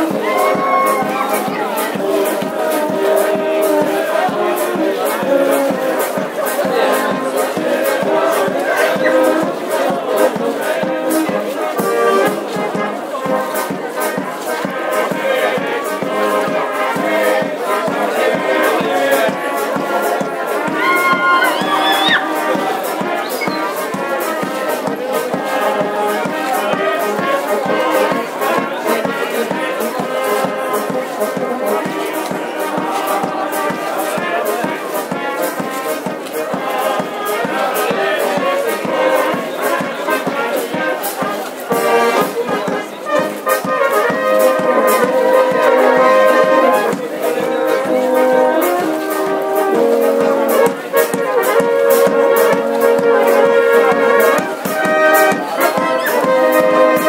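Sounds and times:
brass band playing dance tune: 0.0 - 57.0
crowd noise: 0.0 - 57.0.

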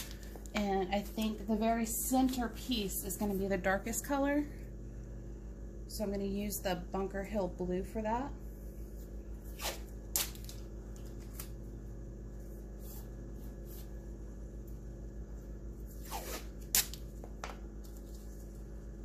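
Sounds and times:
tape crackling and rustling: 0.0 - 1.4, 9.5 - 11.8, 15.9 - 19.0
low hum: 0.0 - 19.0.

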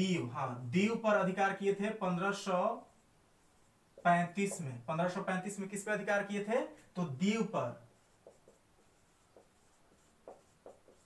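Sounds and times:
marker scratching on whiteboard: 1.2 - 6.5, 7.1 - 11.0.

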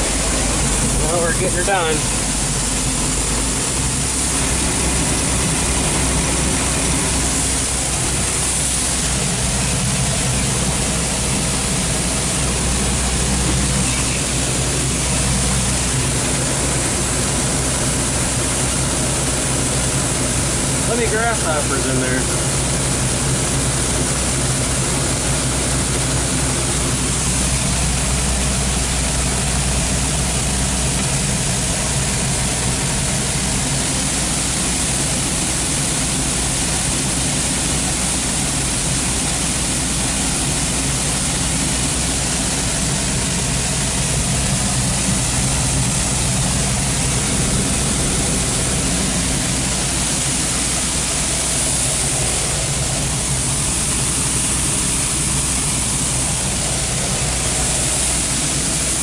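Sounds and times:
combine harvester droning: 0.0 - 59.0
grain auger rushing: 0.0 - 59.0.

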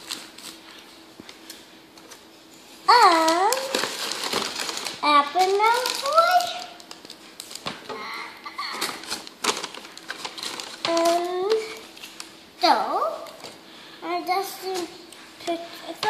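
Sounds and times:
child exclaiming: 2.9 - 3.7
paper bag crinkling: 2.9 - 7.8, 8.6 - 12.3.

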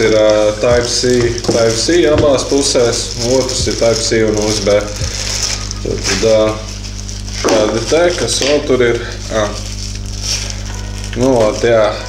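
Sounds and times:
man speaking: 0.0 - 5.1, 5.8 - 6.7, 7.4 - 9.7, 11.2 - 12.0
steady low hum: 0.0 - 12.0.

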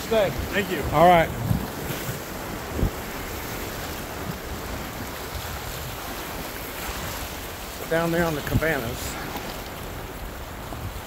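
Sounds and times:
surf washing against rocks: 0.0 - 11.0
wind on microphone: 0.0 - 11.0.

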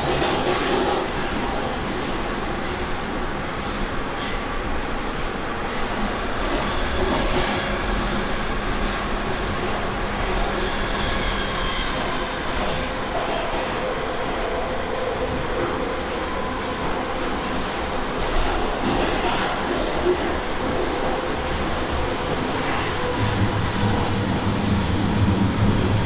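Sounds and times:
train wheels rumbling on rail: 0.0 - 26.0.

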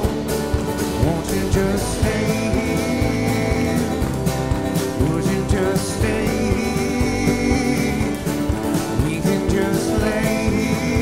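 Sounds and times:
drum beat: 0.0 - 11.0
electric bass: 0.0 - 11.0
strummed acoustic guitar: 0.0 - 11.0.

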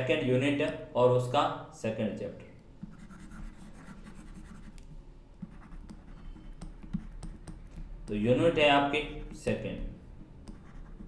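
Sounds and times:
stylus scratching on pen tablet: 2.8 - 4.8, 5.4 - 8.0, 10.3 - 11.0.

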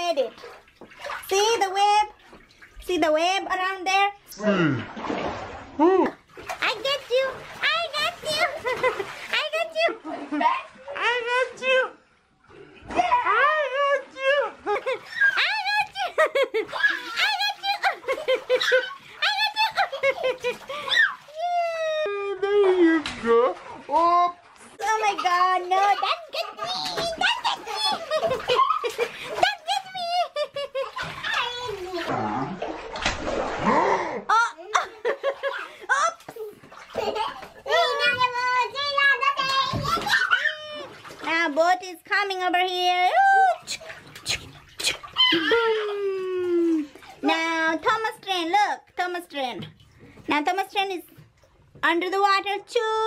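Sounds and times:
bath water splashing: 0.0 - 52.7.

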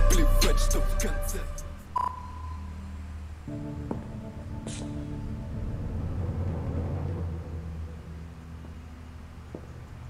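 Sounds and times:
deep low rumbling drone: 4.7 - 10.0.

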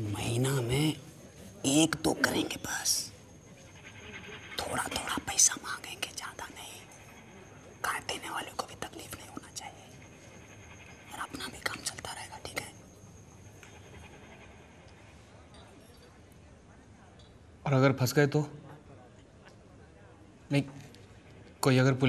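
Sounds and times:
men whispering: 0.0 - 3.4, 4.6 - 10.3, 11.0 - 12.9.

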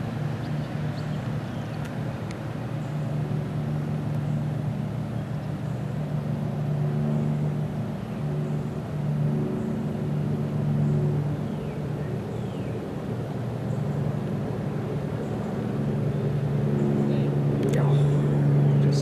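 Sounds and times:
engine humming: 0.0 - 19.0.

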